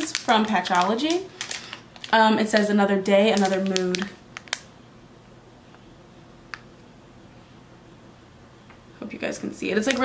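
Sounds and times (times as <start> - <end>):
fingernails clicking on plastic pouch: 3.3 - 4.6.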